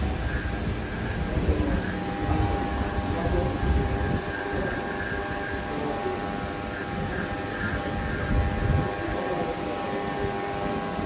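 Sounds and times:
electric hair clippers buzzing: 0:00.0 - 0:11.0.

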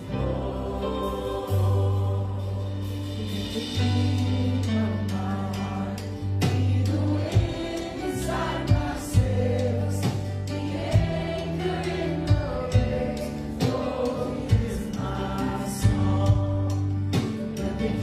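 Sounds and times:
voices singing: 0:00.0 - 0:18.0
worship band music: 0:00.0 - 0:18.0.

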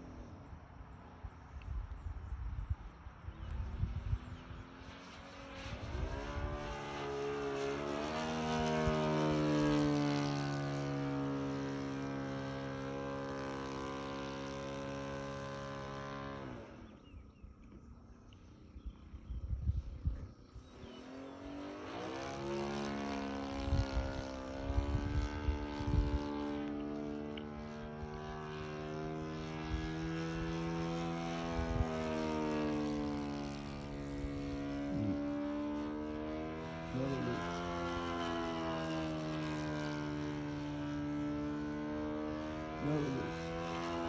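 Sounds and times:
model airplane engine: 0:00.0 - 0:44.0.

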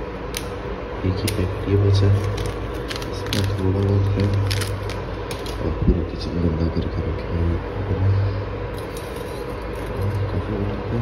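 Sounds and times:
cooling fan whirring: 0:00.0 - 0:11.0.

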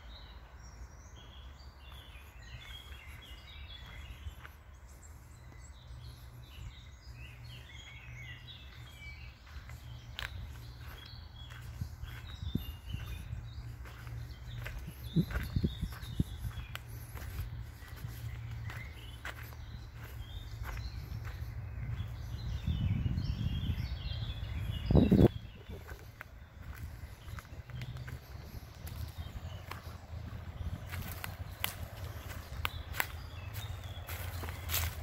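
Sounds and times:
small birds chirping: 0:00.0 - 0:35.0
footsteps on twigs and leaves: 0:01.5 - 0:22.8, 0:24.2 - 0:35.0
steady low rumble: 0:02.6 - 0:35.0.

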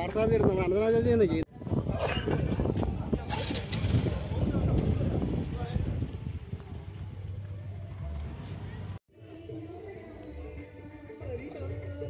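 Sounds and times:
indistinct voices outdoors: 0:00.0 - 0:12.0.

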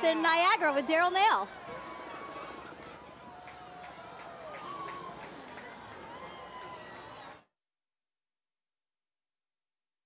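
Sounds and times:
crowd chatter: 0:00.0 - 0:07.5.

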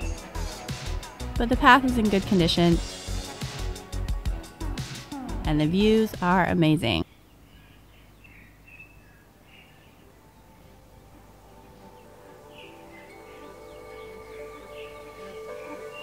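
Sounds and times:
background music held notes: 0:00.0 - 0:06.6, 0:09.2 - 0:16.0
faint bird chirps: 0:07.0 - 0:16.0.

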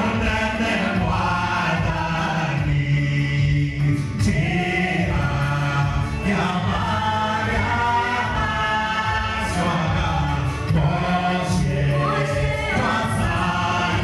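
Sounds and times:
gospel choir singing: 0:00.0 - 0:14.0
man singing into microphone: 0:00.0 - 0:14.0.

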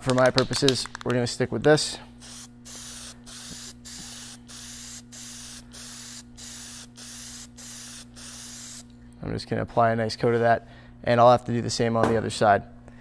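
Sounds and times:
spray paint can hissing: 0:02.2 - 0:08.9.

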